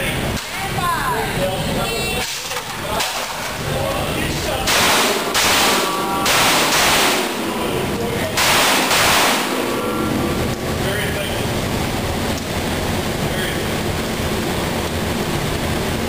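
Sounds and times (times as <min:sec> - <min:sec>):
echoing handgun shots: 0:04.6 - 0:07.5, 0:08.4 - 0:09.8.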